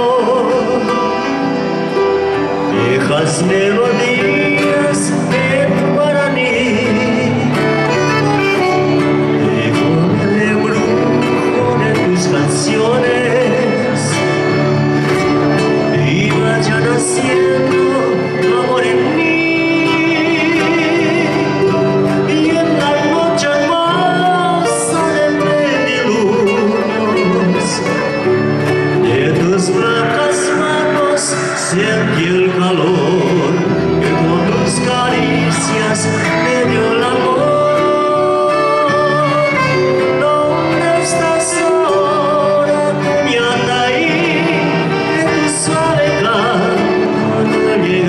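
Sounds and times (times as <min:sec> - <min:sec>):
accordion: 0:00.0 - 0:48.0
acoustic guitars: 0:00.0 - 0:48.0
man singing: 0:00.0 - 0:48.0.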